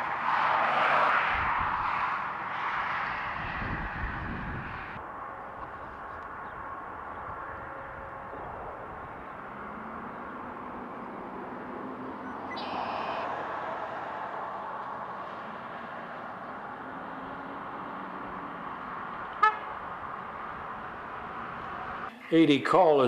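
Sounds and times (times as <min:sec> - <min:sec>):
road traffic: 0:00.0 - 0:23.0
horn toot: 0:19.4 - 0:19.7.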